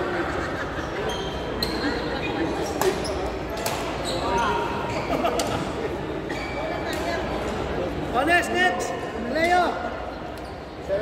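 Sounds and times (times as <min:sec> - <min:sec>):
echoing background chatter: 0:00.0 - 0:11.0
shoes squeaking on court floor: 0:00.8 - 0:05.7, 0:10.1 - 0:10.9
rackets striking shuttlecock: 0:02.8 - 0:04.0.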